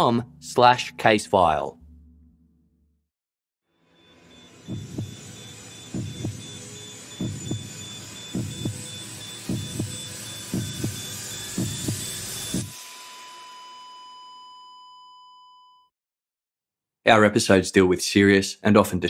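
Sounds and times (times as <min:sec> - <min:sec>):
steady electronic beep tone: 0:03.8 - 0:15.9
heartbeat thumps: 0:04.7 - 0:06.6, 0:07.2 - 0:12.7.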